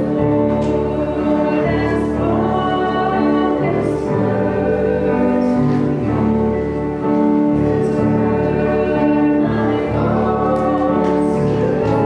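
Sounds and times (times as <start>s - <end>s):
keyboard accompaniment: 0.0s - 12.0s
voices singing a hymn: 0.0s - 12.0s.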